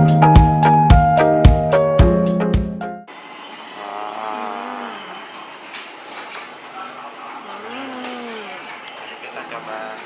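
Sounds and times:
busy restaurant din: 3.4 - 10.0.

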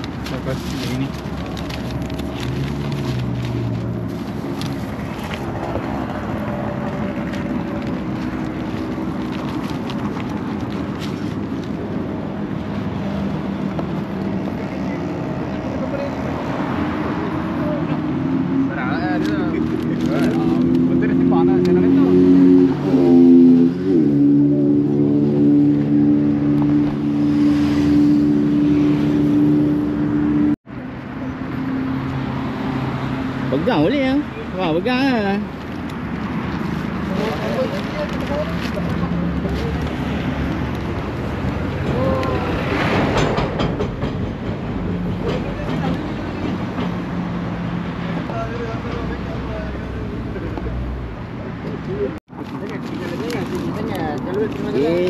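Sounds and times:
highway traffic passing: 0.0 - 55.0
people talking: 51.9 - 55.0.

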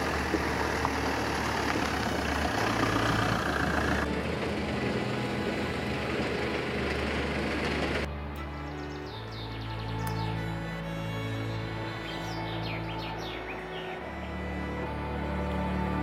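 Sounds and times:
dull outdoor noise: 0.0 - 16.0
van engine and tyre noise: 0.0 - 16.0
low background music: 4.0 - 16.0.

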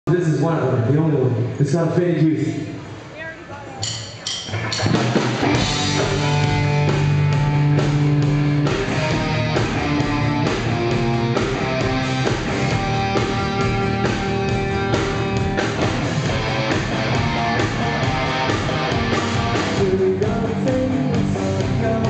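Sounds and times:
electric guitar held notes: 4.5 - 20.3
bass guitar: 4.5 - 22.0.

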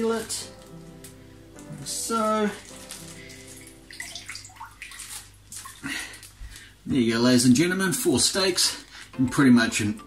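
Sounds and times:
water splashing and dripping: 2.8 - 6.7.

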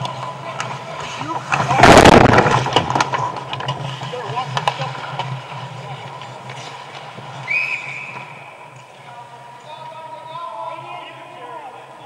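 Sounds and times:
sticks and skates clicking on ice: 0.0 - 1.8, 2.4 - 9.0
skates scraping on ice: 0.0 - 8.7
referee's whistle: 7.4 - 8.5.

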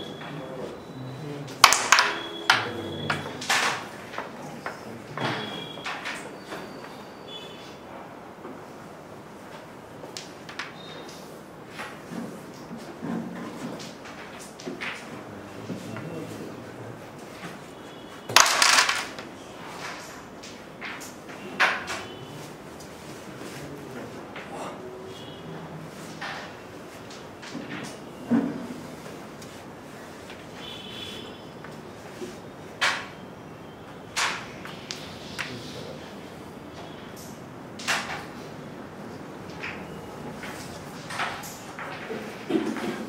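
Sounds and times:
pieces clicking against frame: 1.6 - 2.3, 18.3 - 22.1
wooden coins clacking: 1.6 - 2.4, 18.3 - 19.3
carrom striker hitting coins: 1.6 - 2.6, 18.3 - 19.3
carrom pieces clattering: 1.6 - 4.3, 18.3 - 22.2.

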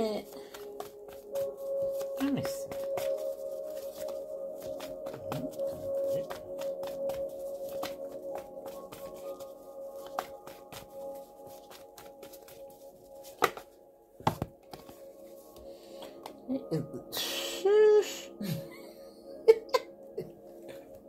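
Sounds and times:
music of steady held tones: 0.0 - 21.0
cards being shuffled: 0.3 - 13.7.

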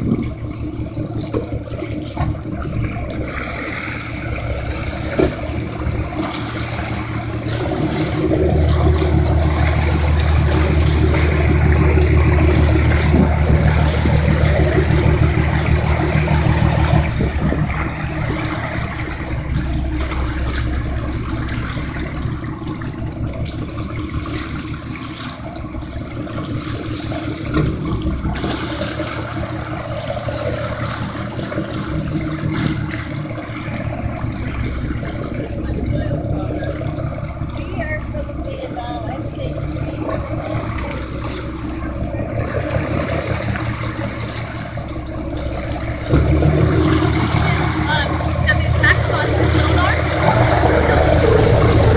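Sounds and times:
boat engine running: 0.0 - 51.9
rushing water: 0.0 - 51.9.

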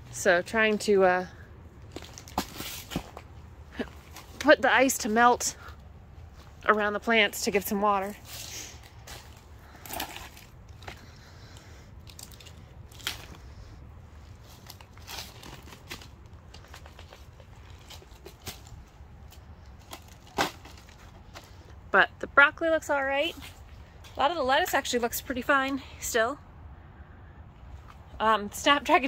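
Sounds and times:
dry leaves rustling and crackling: 12.0 - 21.6.

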